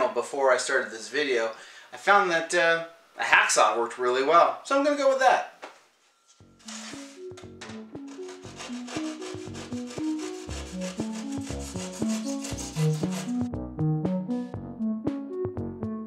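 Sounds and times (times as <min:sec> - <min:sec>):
hacksaw rasping through foam board: 0:08.0 - 0:13.5
background music with a beat: 0:09.0 - 0:16.0.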